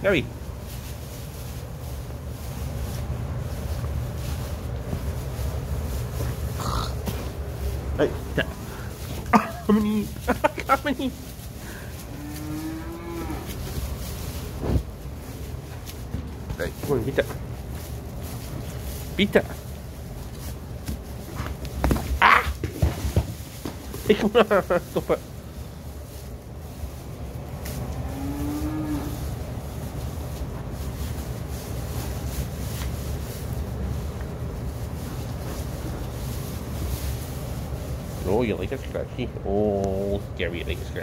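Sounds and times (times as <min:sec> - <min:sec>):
calf mooing: 0:12.1 - 0:13.6, 0:27.9 - 0:29.2.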